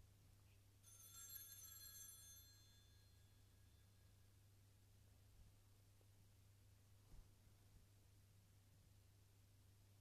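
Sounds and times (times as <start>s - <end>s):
small bell ringing: 0.8s - 4.1s.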